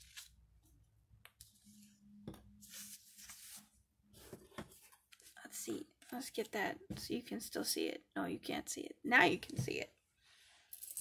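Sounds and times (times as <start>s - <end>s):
paper card rustling: 2.6s - 5.4s.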